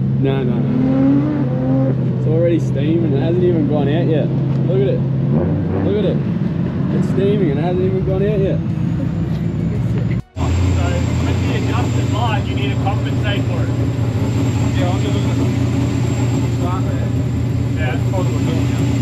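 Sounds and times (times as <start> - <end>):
low engine drone: 5.0 - 19.0
people laughing: 8.9 - 10.7.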